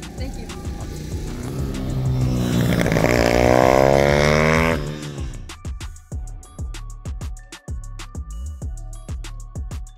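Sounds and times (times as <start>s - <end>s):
motorcycle engine accelerating: 0.0s - 5.5s
background music: 0.0s - 9.9s.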